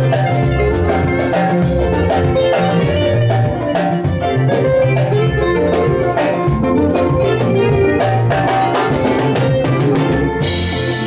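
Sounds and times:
bass line: 0.0 - 11.0
drum beat: 0.0 - 11.0
electronic keyboard playing: 0.0 - 11.0.

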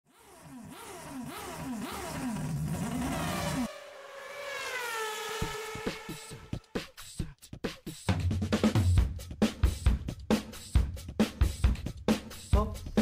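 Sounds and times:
cartoon engine revving: 0.1 - 6.7
tone sliding down in pitch: 3.6 - 6.5.

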